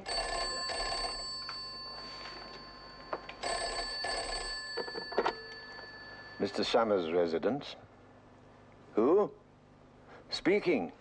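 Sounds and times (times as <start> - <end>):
wall telephone ringing: 0.0 - 7.1.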